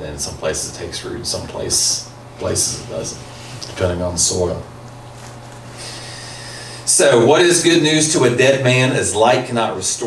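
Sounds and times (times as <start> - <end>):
man breathing in: 5.7 - 6.9.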